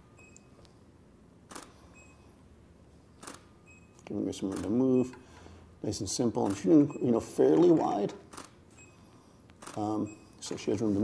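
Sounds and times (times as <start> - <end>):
camera shutter release: 1.5 - 2.0, 3.2 - 3.5, 4.5 - 4.8, 6.4 - 6.8, 8.3 - 8.6, 9.6 - 10.0.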